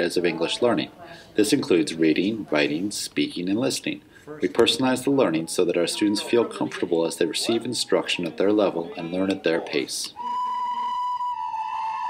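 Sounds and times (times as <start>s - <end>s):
children playing recorders: 10.2s - 12.0s.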